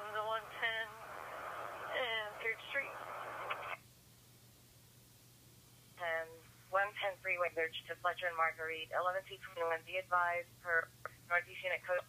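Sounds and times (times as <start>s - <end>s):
radio transmission hiss: 0.0s - 3.8s
faint low hum: 0.0s - 12.0s.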